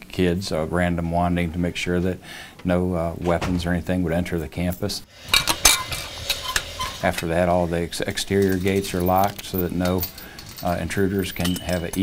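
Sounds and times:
chain and padlock clinking on metal: 8.0s - 12.0s.

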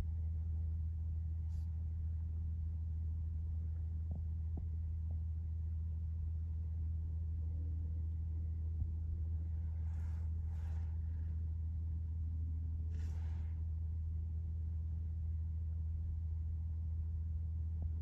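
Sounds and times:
low mechanical rumble: 0.0s - 18.0s
rustling hisses: 12.9s - 13.6s.

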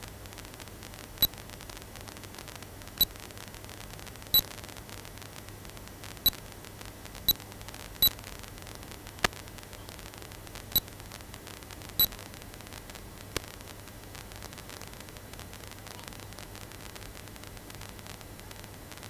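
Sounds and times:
steady static hiss: 0.0s - 19.0s.

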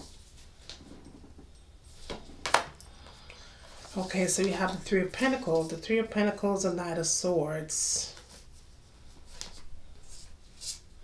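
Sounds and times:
hands handling cards: 3.6s - 5.8s, 9.2s - 10.8s.

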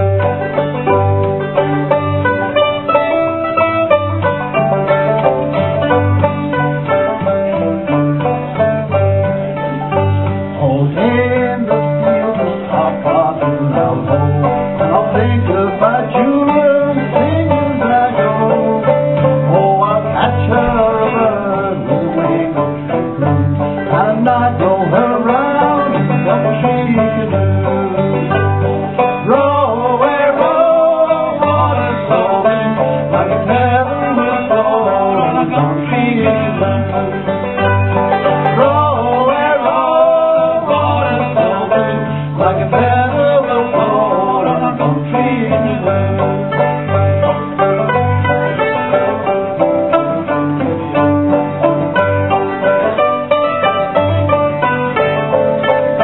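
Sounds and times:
string band playing: 0.0s - 56.0s
man singing: 10.5s - 47.0s.

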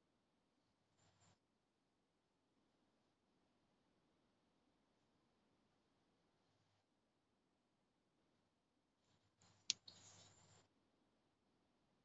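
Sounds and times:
rustling or scraping noise: 9.1s - 10.7s.

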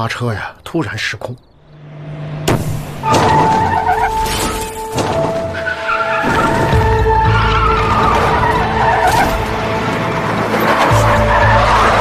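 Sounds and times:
dramatic music: 1.7s - 12.0s
tyres squealing: 3.0s - 12.0s.

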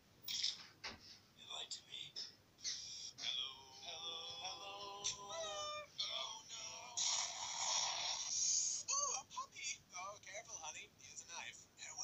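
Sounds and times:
high-pitched cartoon voices: 2.6s - 9.6s.

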